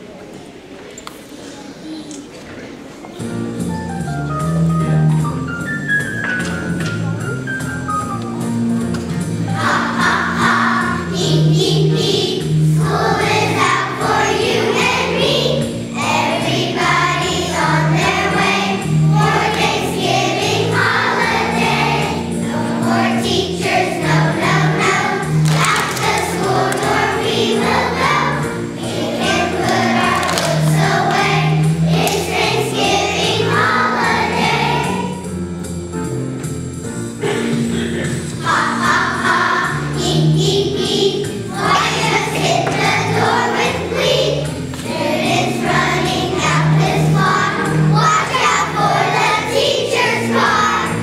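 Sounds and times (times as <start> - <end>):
instrumental accompaniment with bass: 3.3 - 51.0
children's choir singing: 9.2 - 35.8, 37.2 - 51.0.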